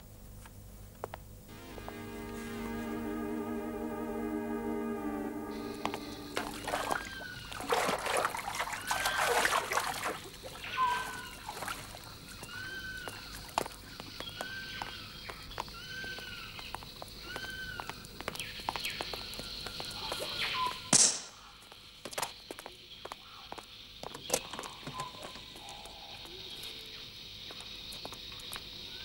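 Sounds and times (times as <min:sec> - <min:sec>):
steady high hiss: 0:01.5 - 0:07.6.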